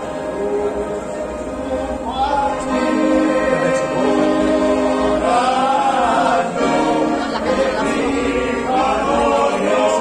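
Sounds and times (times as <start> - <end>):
men singing in harmony: 0.0 - 10.0.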